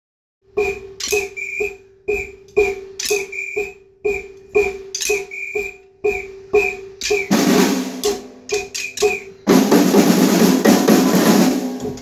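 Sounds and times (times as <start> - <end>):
drumsticks clicking together: 0.6 - 7.3, 8.0 - 9.3.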